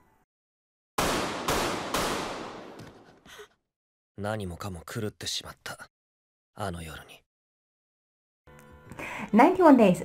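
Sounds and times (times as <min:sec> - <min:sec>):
gunshots ringing: 0:01.0 - 0:02.8.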